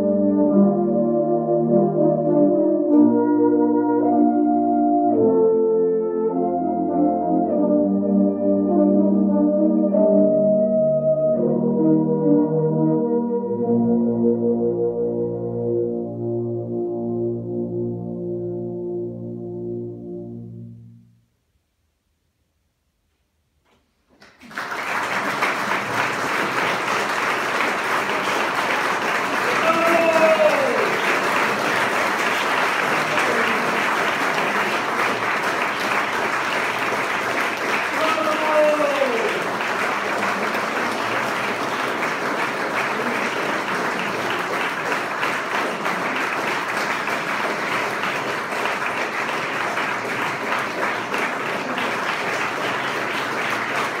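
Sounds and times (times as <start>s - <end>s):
audience applauding: 24.1s - 54.0s
falling cheers: 29.4s - 31.6s, 37.9s - 39.5s.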